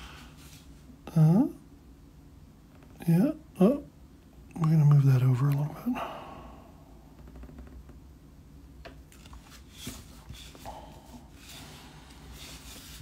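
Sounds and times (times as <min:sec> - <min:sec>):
card rustling and sliding on desk: 0:09.1 - 0:10.7, 0:11.3 - 0:13.0.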